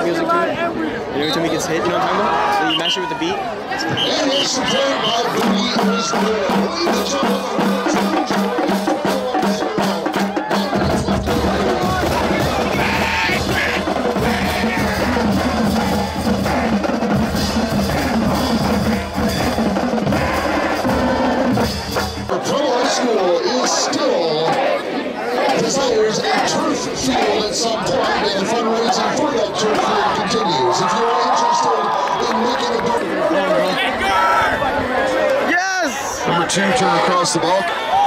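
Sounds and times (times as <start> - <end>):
crowd voices: 0.0 - 38.0
marching drumline playing cadence: 3.9 - 23.0
deep low drum: 10.7 - 22.3.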